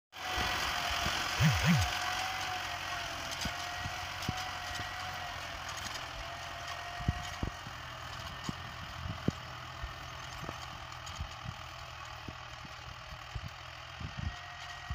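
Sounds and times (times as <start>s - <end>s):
tractor engine running: 0.2s - 14.9s
steady whine: 1.4s - 2.0s.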